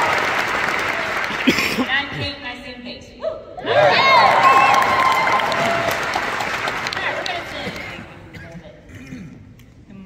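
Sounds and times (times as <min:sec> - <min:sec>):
audience applauding: 0:00.0 - 0:01.7, 0:03.8 - 0:08.1
whoops and cheers: 0:03.2 - 0:06.2.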